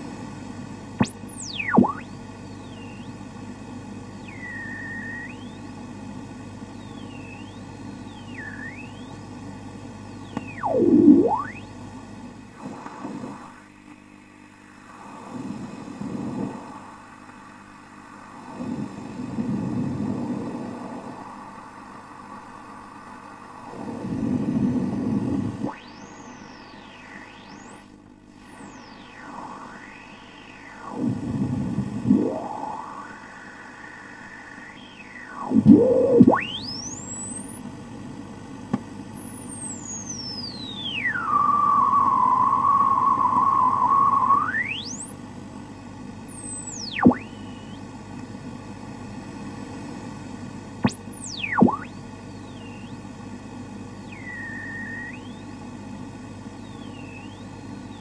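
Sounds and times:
radio static hiss: 0.0 - 58.0
steady low hum: 0.0 - 58.0
swooping whistling tones: 1.0 - 3.1, 4.2 - 5.6, 6.8 - 9.2, 10.2 - 11.7, 28.6 - 31.2, 32.0 - 37.7, 39.5 - 45.1, 46.3 - 47.8, 50.9 - 53.0, 54.0 - 55.5, 56.6 - 58.0.

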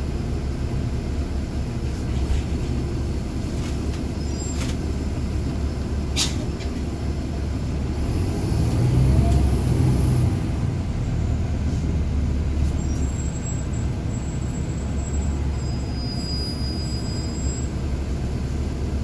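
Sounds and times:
bus diesel engine rumble: 0.0 - 19.0.

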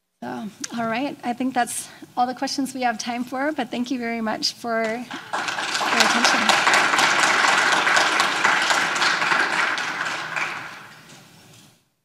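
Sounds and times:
audience applauding: 5.0 - 11.4.

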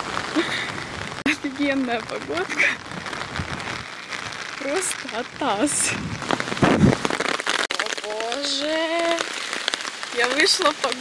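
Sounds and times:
rain on an umbrella: 0.0 - 11.0.

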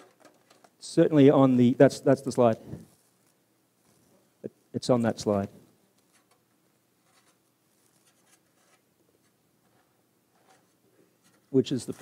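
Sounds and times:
faint soft ticks and rustles: 2.4 - 4.3.

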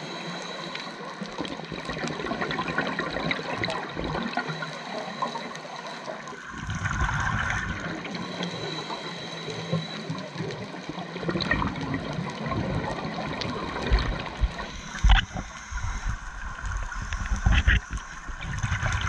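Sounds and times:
underwater crackle of clicks: 0.0 - 19.0
scuba regulator bubbles gushing: 1.0 - 19.0.

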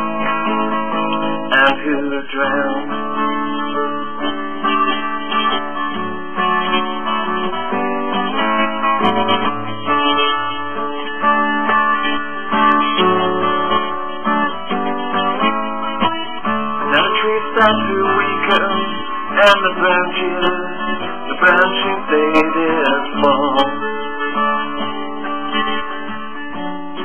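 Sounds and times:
acoustic guitar strumming chords: 0.0 - 27.0.

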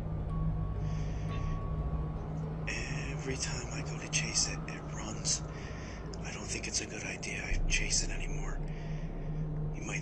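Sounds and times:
steady low hum: 0.0 - 10.0
person whispering: 9.8 - 10.0.

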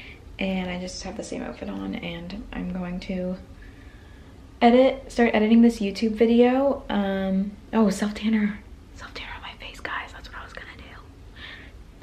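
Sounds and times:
woman whispering: 9.0 - 11.1.

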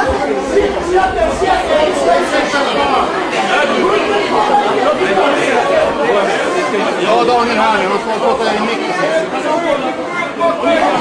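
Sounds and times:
crowd hubbub: 0.0 - 11.0.

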